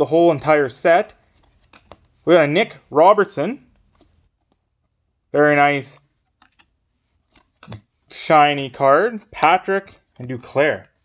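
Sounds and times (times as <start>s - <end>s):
cards rustling: 0.3s - 11.0s
faint clicks of card edges: 1.2s - 2.2s, 6.0s - 8.1s.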